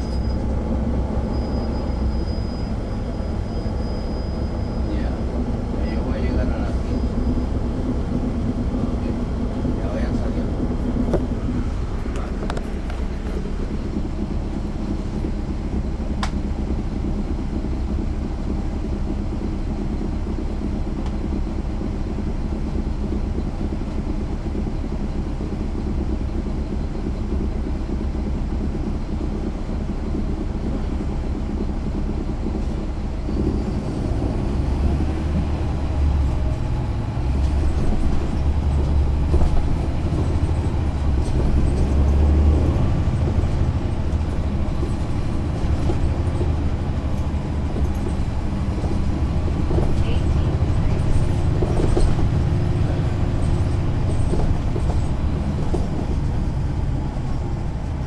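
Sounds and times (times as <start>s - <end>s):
bus diesel engine rumbling: 0.0s - 58.0s.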